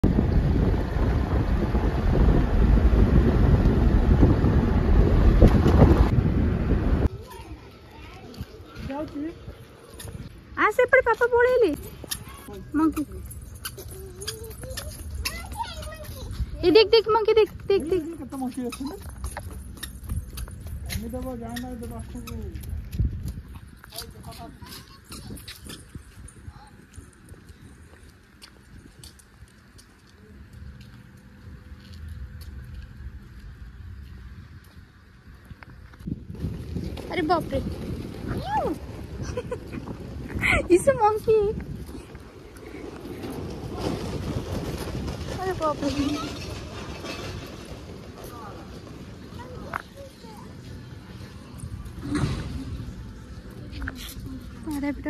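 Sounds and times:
car road noise rumble: 0.0 - 7.4
wind buffeting microphone: 0.0 - 12.5, 14.4 - 29.7, 31.4 - 55.0
footsteps on paving stones: 7.1 - 55.0
thump: 52.0 - 52.7.

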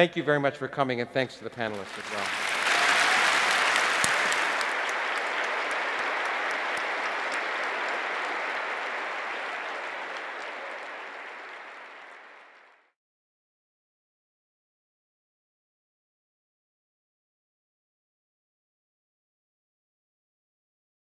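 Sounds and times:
large audience applauding: 1.6 - 13.0.

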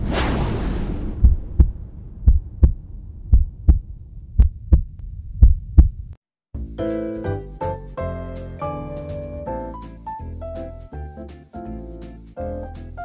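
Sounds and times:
heartbeat thumps: 1.1 - 6.2
music: 6.5 - 13.0.

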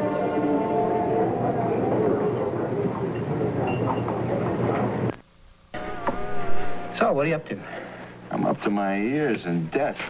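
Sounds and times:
steady buzzing tone: 5.1 - 9.8.

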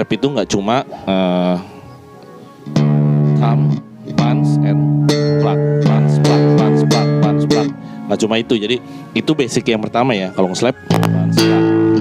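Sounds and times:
slap bass guitar notes: 2.6 - 9.8, 10.8 - 12.0.

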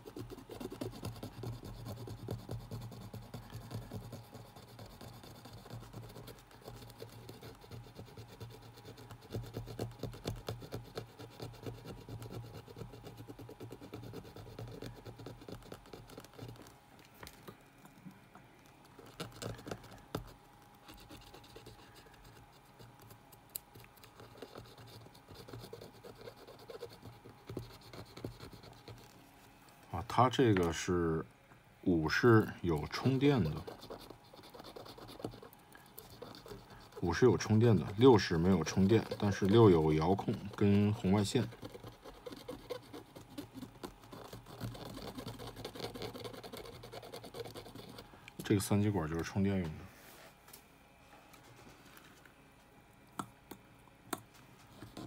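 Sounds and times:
cotton swab scratching circuit board: 0.0 - 16.8, 18.8 - 29.2, 32.0 - 49.7, 54.6 - 55.0.

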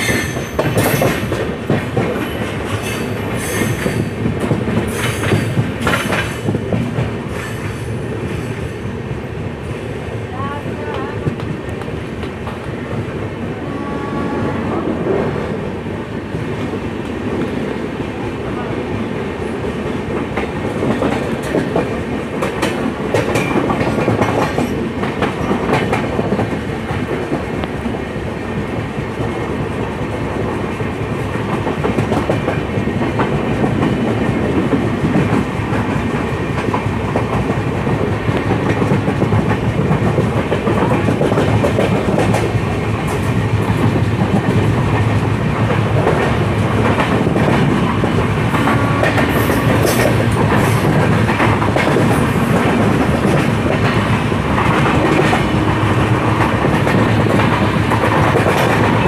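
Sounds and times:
clickety-clack over rail joints: 0.0 - 13.4, 16.2 - 59.0
train wheels rumbling: 0.0 - 59.0.

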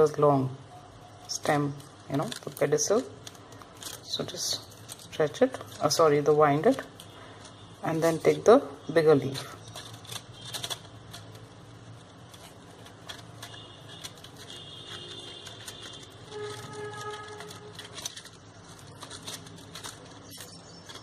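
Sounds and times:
tape rustling: 1.1 - 21.0
paper leaves brushing: 1.2 - 21.0
small irregular clicks: 9.6 - 21.0.

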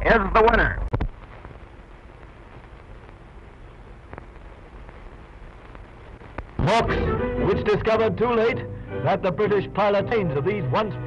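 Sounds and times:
film soundtrack hiss and crackle: 0.0 - 11.0.

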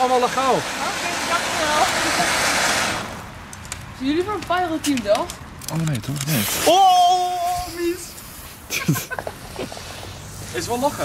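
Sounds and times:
firework fountain hissing: 0.0 - 3.4, 6.2 - 11.0.

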